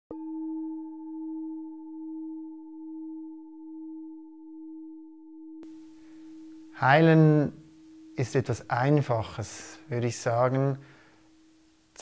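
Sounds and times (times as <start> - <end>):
singing bowl ringing: 0.1 - 9.9, 11.0 - 11.7
faint background hiss: 5.6 - 12.0.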